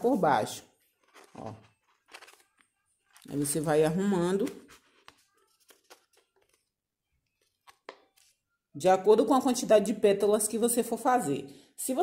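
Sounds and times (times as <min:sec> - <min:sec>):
paper rustling and clicking: 0:01.0 - 0:03.7, 0:04.3 - 0:08.4.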